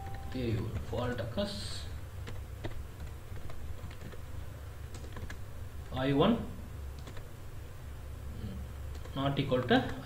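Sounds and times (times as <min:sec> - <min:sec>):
computer keyboard keystrokes: 0:00.0 - 0:01.3, 0:02.2 - 0:04.2, 0:04.9 - 0:05.4, 0:07.0 - 0:07.3
steady low hum: 0:00.0 - 0:10.0.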